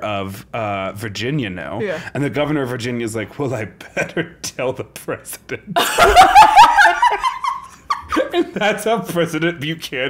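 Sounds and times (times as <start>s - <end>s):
woman laughing loudly: 5.8s - 8.5s
man laughing: 5.8s - 8.9s.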